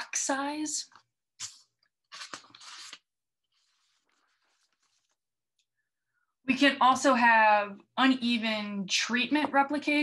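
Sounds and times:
paper rustling and crinkling: 1.4 - 5.3.

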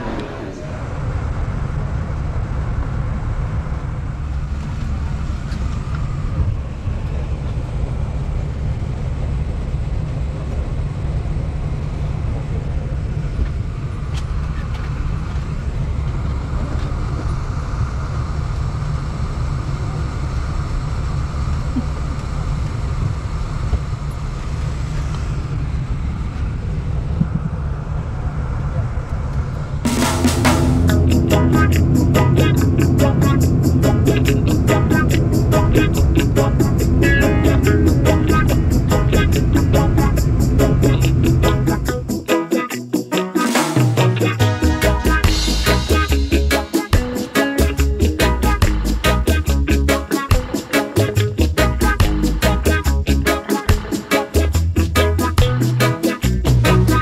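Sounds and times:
airliner engines droning: 0.0 - 57.0.

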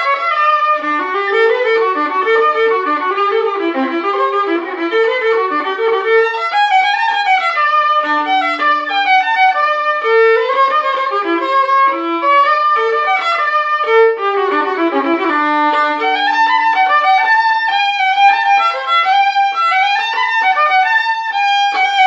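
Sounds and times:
solo violin jig: 0.0 - 22.0.

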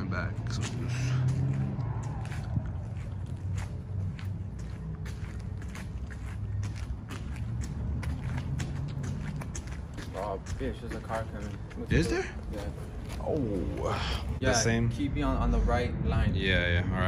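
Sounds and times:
steady low rumble: 0.0 - 17.0
footsteps on pavement: 0.2 - 14.4.

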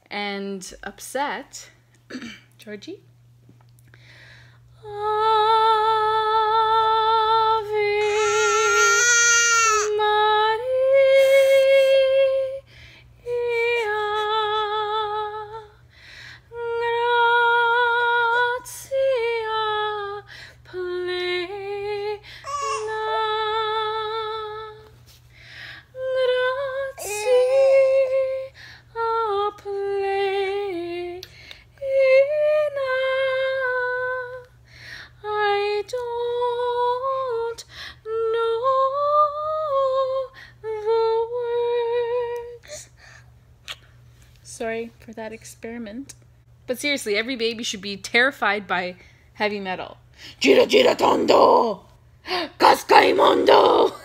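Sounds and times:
woman singing opera-style: 4.8 - 15.8, 16.5 - 25.0, 25.9 - 31.2, 31.8 - 34.6, 35.2 - 42.6, 50.4 - 54.0.

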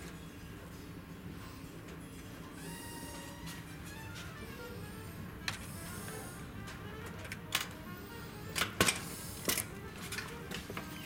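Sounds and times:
machinery low hum: 0.0 - 11.0.

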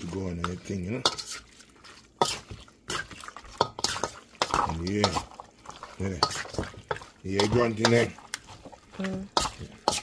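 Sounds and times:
utensil scraping a metal pot: 0.0 - 10.0.

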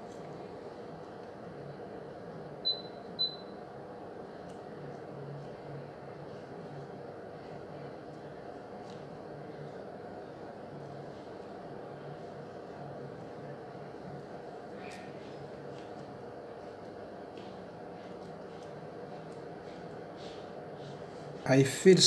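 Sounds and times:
low hum and hiss: 0.0 - 22.0.

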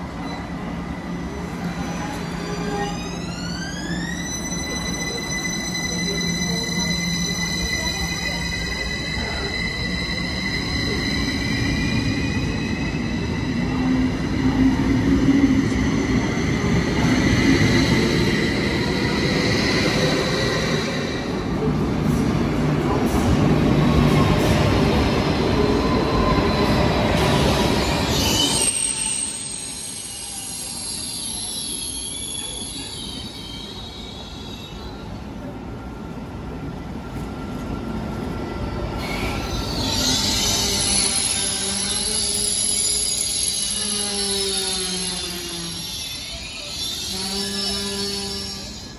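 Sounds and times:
train rolling in and stopping: 0.0 - 48.9
train wheels squealing: 0.1 - 21.7, 22.8 - 35.6, 38.8 - 48.9.

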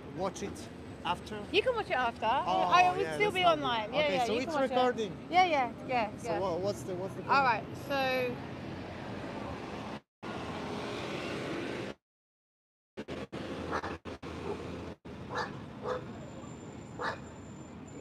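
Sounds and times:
outdoor street background noise: 0.0 - 12.0, 13.0 - 18.0.

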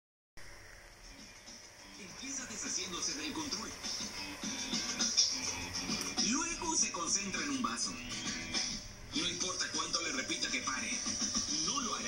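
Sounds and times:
television background music: 0.4 - 12.0
voice over music: 1.8 - 12.0.

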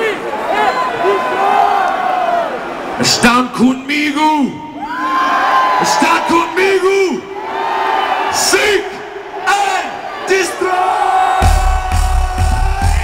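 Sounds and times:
stadium crowd cheering: 0.0 - 13.0
fans yelling close by: 4.2 - 13.0.

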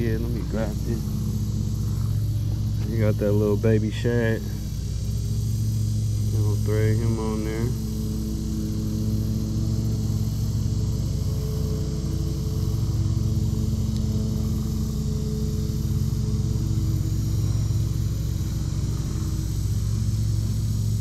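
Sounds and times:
lawn mower engine running: 0.0 - 21.0.

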